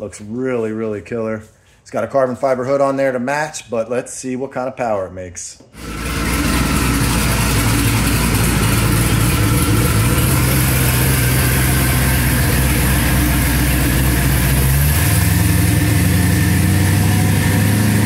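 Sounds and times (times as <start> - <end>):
engine idling: 5.8 - 18.0.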